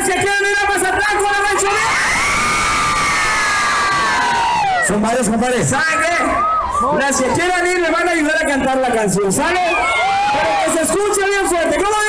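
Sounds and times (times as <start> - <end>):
concert crowd cheering: 0.0 - 12.0
people screaming: 0.9 - 7.8, 9.4 - 11.8.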